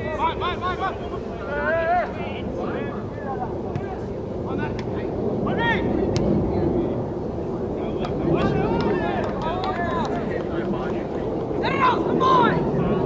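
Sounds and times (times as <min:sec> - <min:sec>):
wind on microphone: 0:02.4 - 0:13.0.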